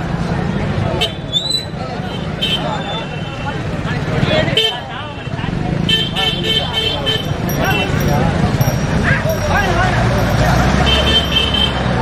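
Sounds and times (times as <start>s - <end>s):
men's voices in a crowd: 2.7s - 11.6s
low vehicle rumble: 7.0s - 12.0s.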